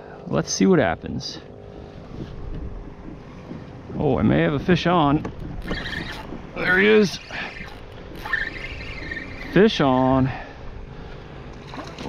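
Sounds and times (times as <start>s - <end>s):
fishing reel whirring: 5.3s - 10.4s.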